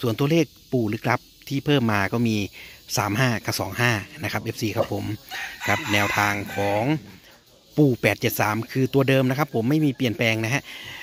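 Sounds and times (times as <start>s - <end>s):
man speaking: 0.0s - 10.8s.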